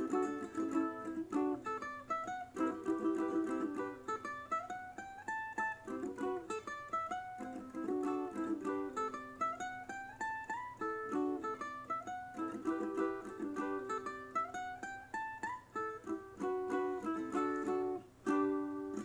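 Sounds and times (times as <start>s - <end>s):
solo ukulele: 0.0s - 19.0s.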